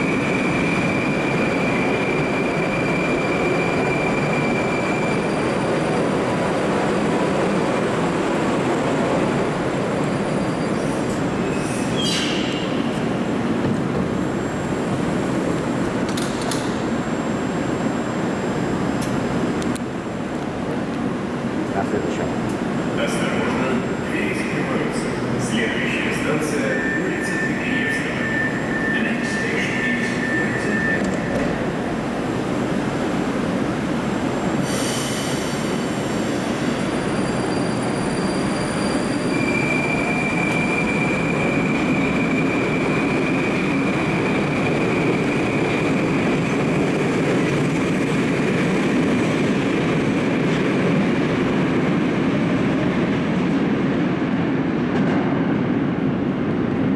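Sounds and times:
train doors shutting clatter: 15.8 - 16.8, 30.0 - 31.7.

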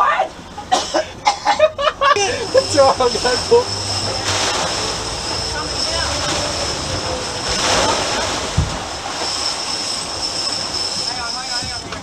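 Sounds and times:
boat engine hum: 0.0 - 12.0
wake water rushing: 0.0 - 12.0.

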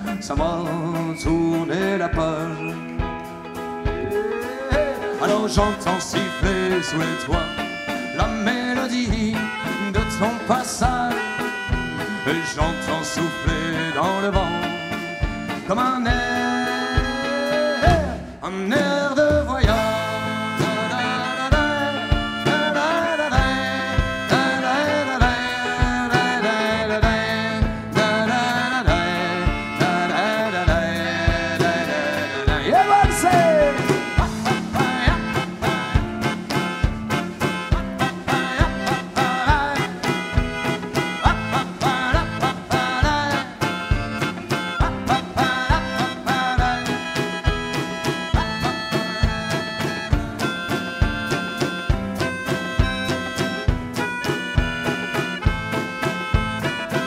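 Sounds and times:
drum kit steady beat: 0.0 - 57.0
live band playing: 0.0 - 57.0.

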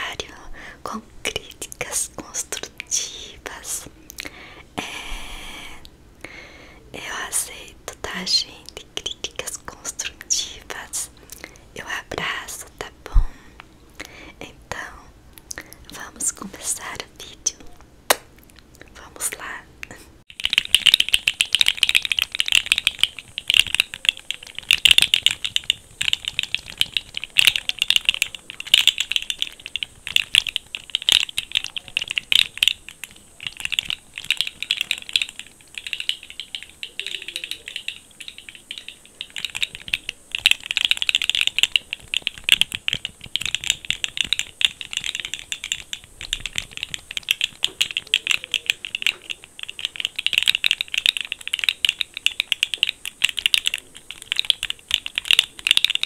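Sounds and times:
plastic fidget toy clicking and rattling: 1.3 - 4.3, 20.3 - 56.0.

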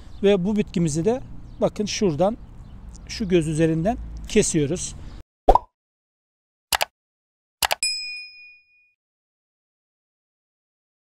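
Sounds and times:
bright bell ding: 7.8 - 9.0.

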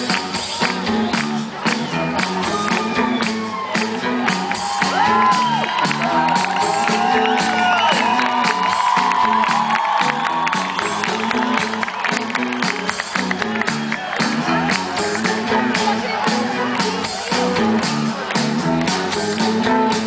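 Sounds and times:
live band playing: 0.0 - 20.0
crowd cheering and whooping: 0.2 - 19.2.

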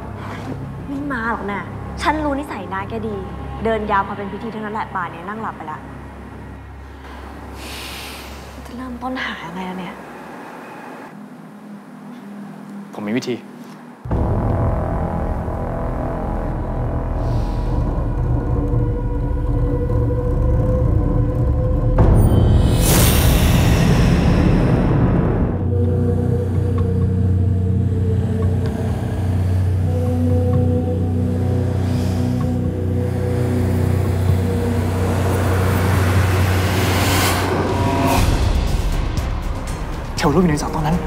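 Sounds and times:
low rumbling drone: 13.9 - 41.0
rushing swell: 28.8 - 41.0.

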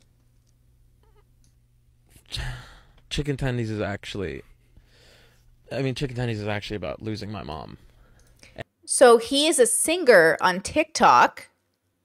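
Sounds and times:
person sighing: 2.2 - 3.0.

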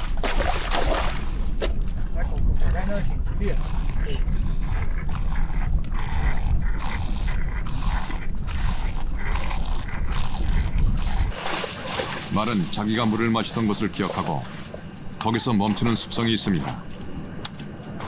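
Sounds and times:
water splashing around horses' legs: 0.0 - 1.6, 11.0 - 14.7
steady low rumble: 0.0 - 14.0.

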